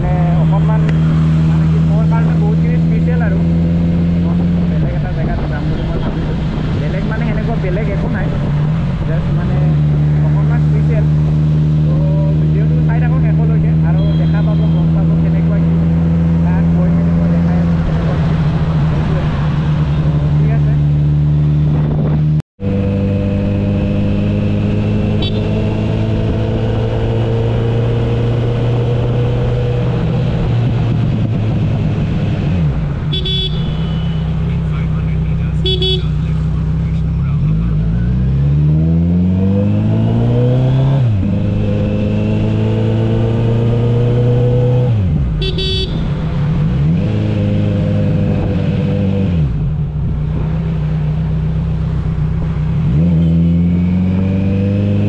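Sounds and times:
car horn toots: 13.9s - 15.0s, 25.2s - 25.6s, 33.1s - 34.4s, 35.6s - 36.2s, 45.4s - 46.2s
motorcycle engine running: 33.1s - 37.9s, 45.2s - 46.6s.

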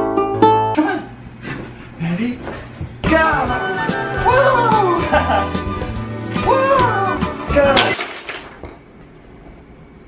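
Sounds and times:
background music with steady beat: 3.0s - 7.8s.

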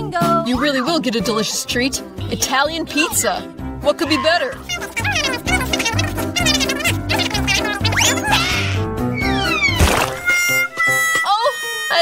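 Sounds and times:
smack: 9.7s - 10.4s.

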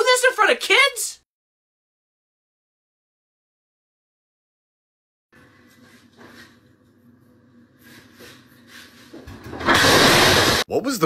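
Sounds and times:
glass shattering crash: 9.6s - 10.6s.

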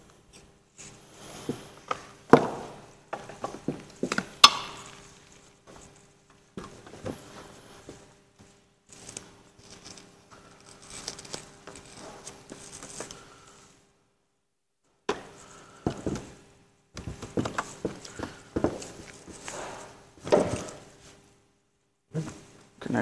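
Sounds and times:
rustling of cables and hose: 0.0s - 13.9s, 17.0s - 21.4s.

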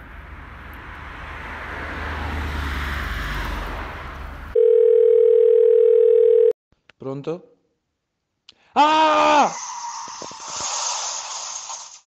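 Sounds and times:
long harsh hiss: 9.5s - 12.0s.

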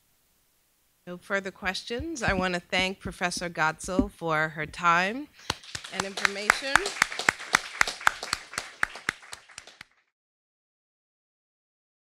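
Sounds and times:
audience applauding: 5.5s - 10.1s.

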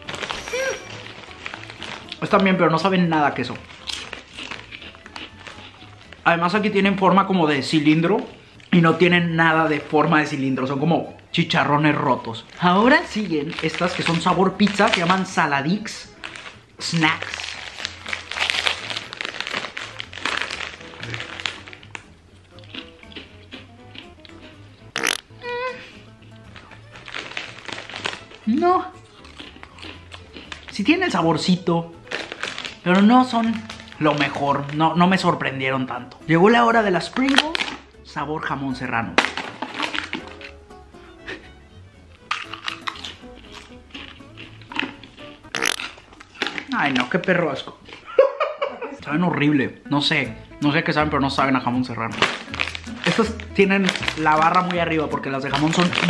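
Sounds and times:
chips being crunched: 0.0s - 6.6s, 12.4s - 25.4s, 26.2s - 28.5s, 29.2s - 34.9s, 37.1s - 37.9s, 39.2s - 40.6s, 42.2s - 48.0s, 52.1s - 56.0s
plastic snack bag crinkling: 0.0s - 10.5s, 11.5s - 36.3s, 37.0s - 37.9s, 39.2s - 40.6s, 42.2s - 48.1s, 51.9s - 56.0s
background music: 0.0s - 56.0s
can crackling and clicking: 24.3s - 25.4s, 44.4s - 47.3s.

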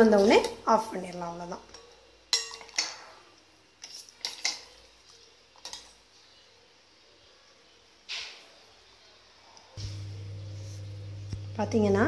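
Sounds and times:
steel ladle clinking against pot: 1.7s - 3.0s.

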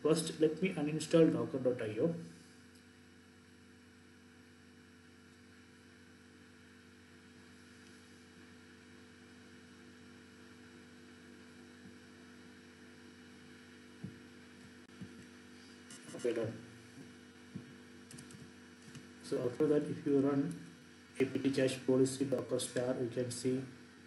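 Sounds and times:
faint electrical hum: 0.0s - 24.0s.

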